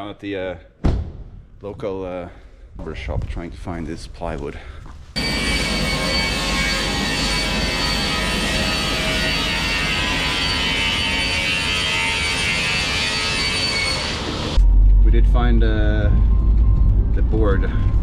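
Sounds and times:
panel saw cutting plywood: 5.2s - 14.6s.

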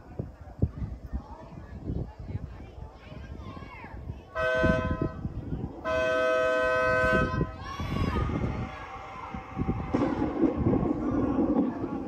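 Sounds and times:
car horn honking: 4.4s - 5.2s, 5.9s - 7.5s.

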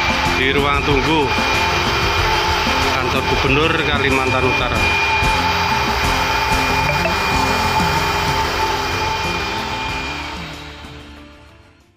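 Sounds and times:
vacuum cleaner motor whine: 0.0s - 11.8s
background music: 0.0s - 11.9s.

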